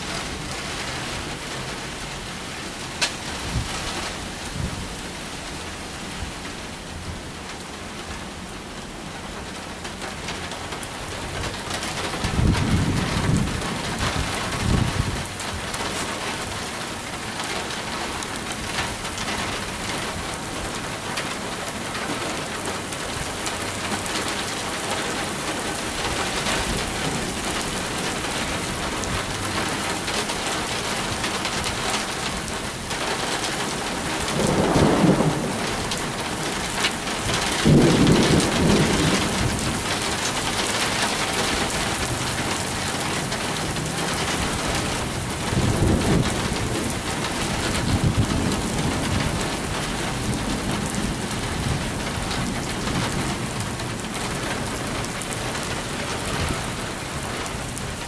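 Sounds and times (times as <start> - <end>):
steady rain falling: 0.0 - 58.0
thunder rumbling: 11.2 - 16.6, 18.7 - 58.0.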